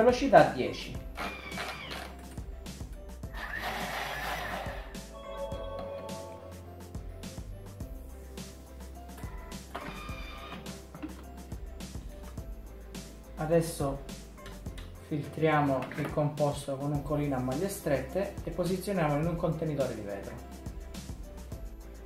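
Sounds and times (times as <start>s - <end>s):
background music: 0.0s - 22.0s
food processor blending: 1.2s - 2.1s, 3.3s - 5.0s.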